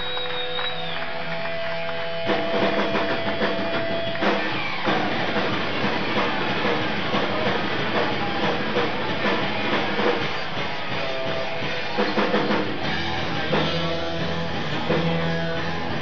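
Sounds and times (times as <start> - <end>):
electric guitar: 0.0 - 16.0
live rock band: 0.0 - 16.0
drums crashing in: 0.8 - 16.0.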